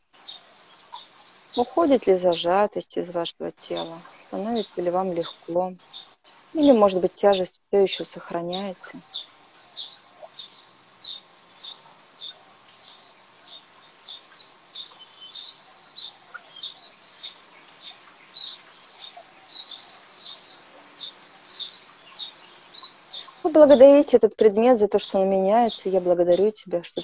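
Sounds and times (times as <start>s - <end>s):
small bird chirping: 0.1s - 2.6s, 3.6s - 24.0s, 24.9s - 27.0s.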